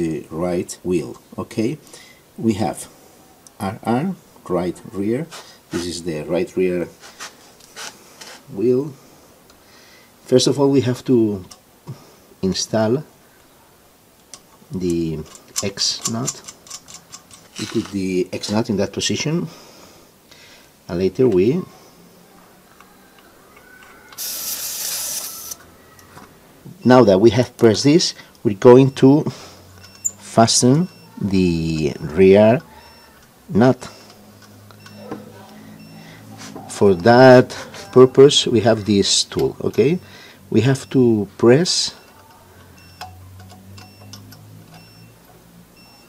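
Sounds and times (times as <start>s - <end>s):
wrench metallic clicks: 14.2s - 18.0s
air hissing from tyre valve: 24.2s - 25.6s.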